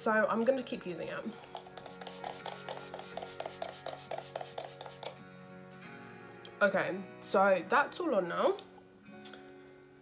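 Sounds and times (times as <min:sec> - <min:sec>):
quiet background music: 0:00.0 - 0:10.0.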